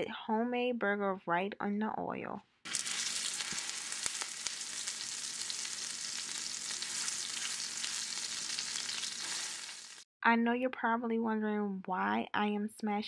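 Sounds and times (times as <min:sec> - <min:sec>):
burger patty sizzling in oil: 0:02.7 - 0:10.1.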